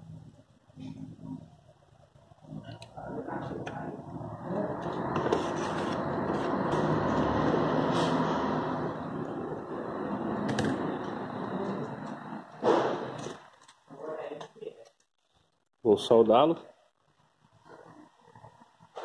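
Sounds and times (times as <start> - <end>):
circuit board scraping and rubbing: 2.5 - 13.5.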